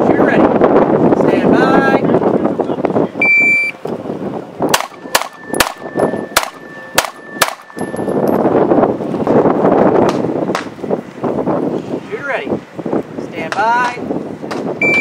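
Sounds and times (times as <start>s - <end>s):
shot timer beep: 3.2s - 3.8s
pistol shots: 4.7s - 5.8s, 6.4s - 7.8s
faint high ringing: 5.3s - 8.4s.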